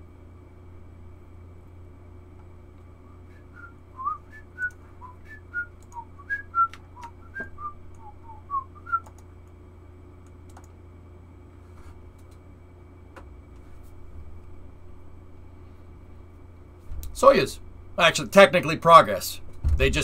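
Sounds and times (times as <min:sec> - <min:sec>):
man whistling a tune: 0:03.0 - 0:09.1
sharp clicks: 0:05.8 - 0:06.0, 0:09.0 - 0:09.6, 0:10.2 - 0:10.8.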